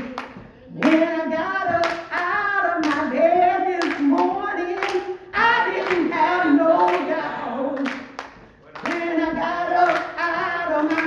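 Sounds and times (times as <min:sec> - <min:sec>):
hand claps: 0:00.0 - 0:06.2, 0:07.8 - 0:11.0
woman singing gospel: 0:00.0 - 0:11.0.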